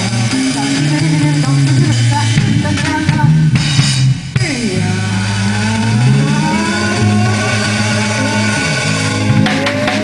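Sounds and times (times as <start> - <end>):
drums: 0.0 - 10.0
held bass notes: 0.0 - 10.0
live band playing: 0.0 - 10.0.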